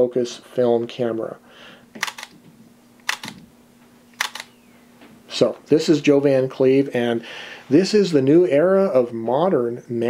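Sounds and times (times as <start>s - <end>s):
camera shutter double click: 2.0s - 2.3s, 3.0s - 3.4s, 4.2s - 4.6s.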